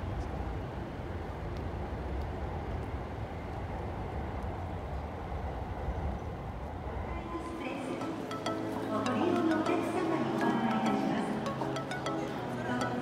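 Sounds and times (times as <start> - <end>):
town ambience rumble: 0.0 - 13.0.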